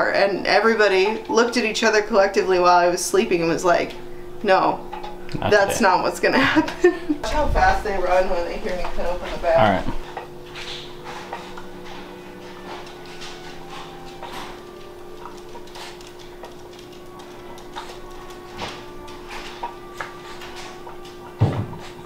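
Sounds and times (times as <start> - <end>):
low hum: 0.0 - 22.0.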